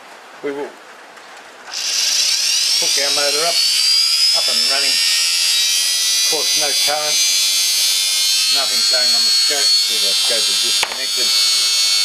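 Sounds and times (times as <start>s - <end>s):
electric motor whine spinning up: 1.7s - 12.0s.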